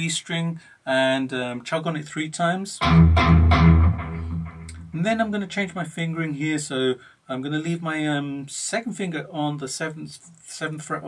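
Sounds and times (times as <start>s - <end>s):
electric guitar palm-muted chugs: 2.8s - 5.0s.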